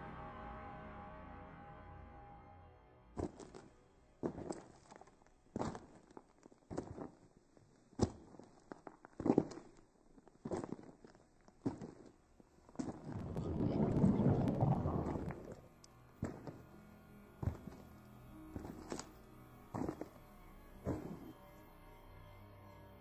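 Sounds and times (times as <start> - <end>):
loud rumbling noise: 13.0 - 15.8.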